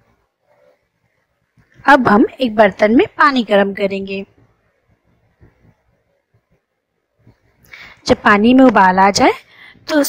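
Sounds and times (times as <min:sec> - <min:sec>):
woman speaking: 0:01.8 - 0:04.4, 0:08.1 - 0:10.0.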